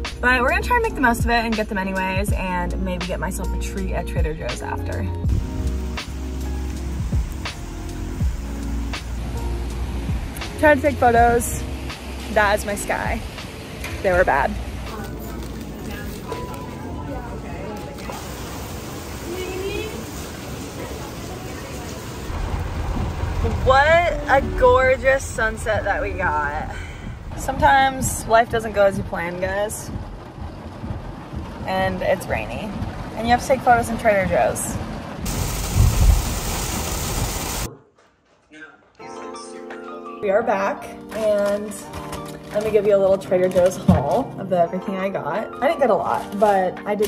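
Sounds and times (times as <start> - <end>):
low rumble: 3.6 - 13.4, 22.2 - 37.7
heavy rain pouring: 5.2 - 37.7
hubbub of distant voices: 14.9 - 18.2, 19.1 - 22.3.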